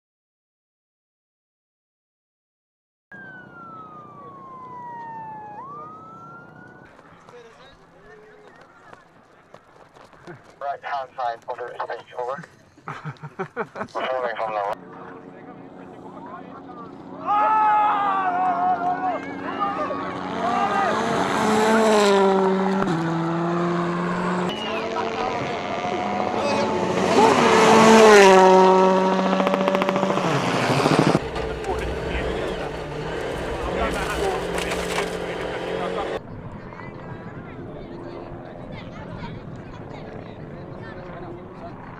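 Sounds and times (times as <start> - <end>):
siren-like sliding tone: 3.1 - 6.9
crowd noise and voices: 3.8 - 30.2, 30.8 - 41.9
rally car engine at full throttle: 14.8 - 41.9
gravel spraying: 31.2 - 36.0.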